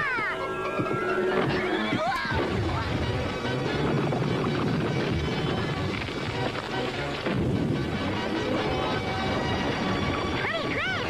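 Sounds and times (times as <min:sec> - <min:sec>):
cartoon background music: 0:00.0 - 0:11.0
sliding whistle tone: 0:00.6 - 0:02.3
rumbling crashing effect: 0:02.3 - 0:09.0.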